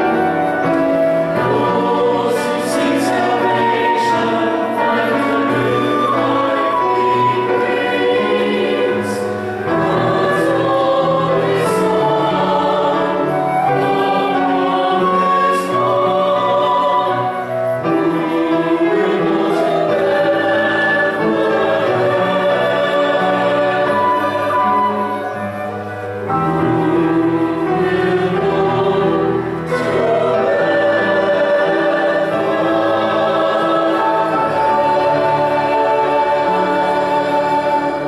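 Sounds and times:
church choir singing: 0.0 - 38.0
flute: 0.0 - 38.0
piano: 0.0 - 38.0.

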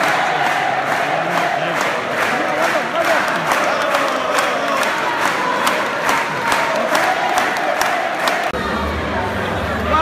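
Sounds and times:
crowd chanting and cheering: 0.0 - 10.0.

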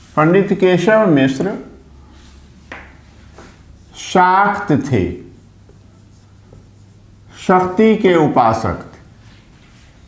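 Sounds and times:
man speaking: 0.2 - 1.8, 3.9 - 5.4, 7.3 - 9.1
marker writing on whiteboard: 2.6 - 8.1.

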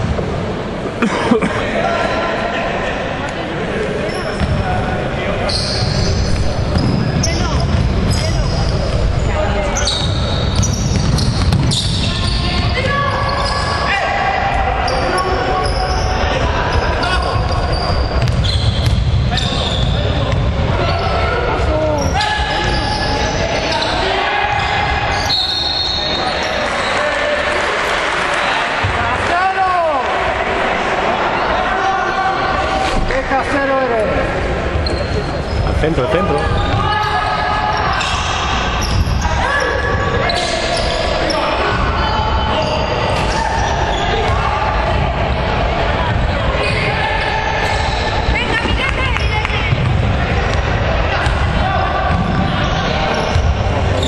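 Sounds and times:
shoes squeaking: 9.7 - 13.8, 14.9 - 20.1, 34.8 - 38.2
basketball bouncing on wooden court: 10.0 - 12.9, 18.2 - 19.3, 49.7 - 52.5.

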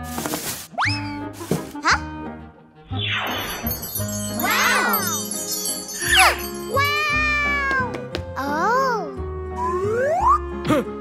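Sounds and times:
cartoon music with tinkling jingle: 3.0 - 7.9.

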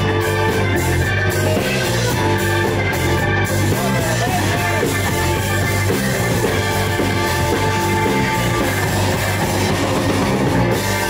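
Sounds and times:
blues-rock band playing: 0.0 - 11.0
repeating bass line: 0.0 - 11.0.

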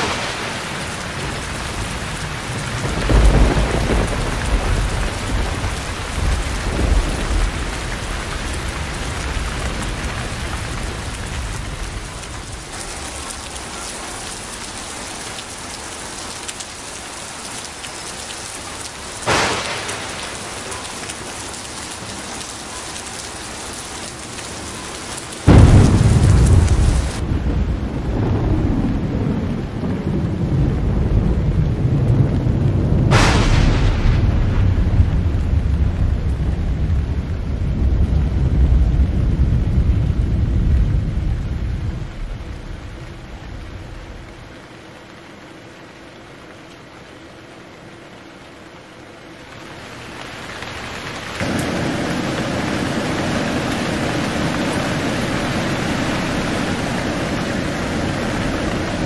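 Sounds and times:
sharp thunderclap: 0.0 - 12.3, 19.2 - 20.8, 25.5 - 44.4
thunder rumbling: 0.0 - 16.3, 18.0 - 23.8, 24.6 - 44.6, 49.8 - 59.0
heavy rain pouring: 0.0 - 59.0.

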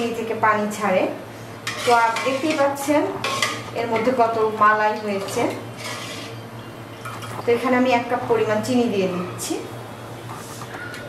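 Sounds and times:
ladle scraping metal pot: 1.6 - 4.1, 5.1 - 6.4.

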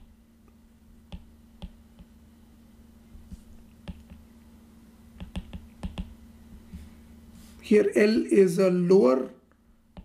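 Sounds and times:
faint steady hum: 0.0 - 10.0
stylus tapping on tablet screen: 1.1 - 2.2, 3.2 - 4.2, 5.1 - 6.8.

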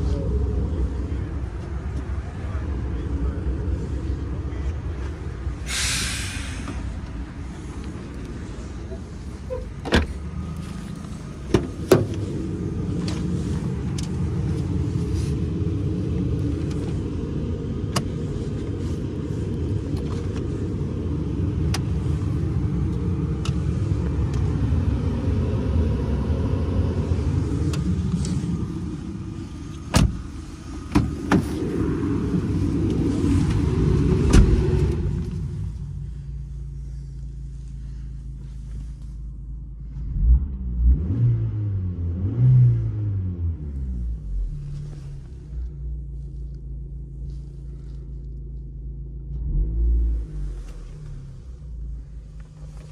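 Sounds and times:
car engine idling: 0.0 - 41.1, 43.8 - 52.9
car door clicks and clunks: 9.5 - 10.2, 17.9 - 18.2, 29.8 - 30.2, 30.9 - 31.6.

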